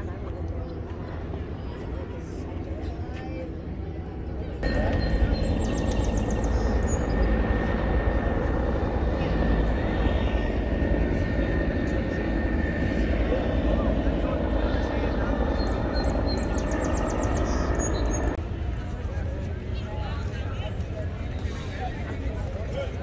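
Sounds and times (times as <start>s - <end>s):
helicopter engine and rotor drone: 0.0s - 23.0s
people chattering: 0.0s - 23.0s.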